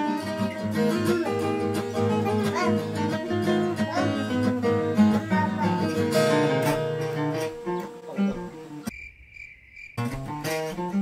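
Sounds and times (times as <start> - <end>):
acoustic guitars playing melody: 0.0 - 8.9, 10.0 - 11.0
insect high-pitched call: 7.6 - 10.5.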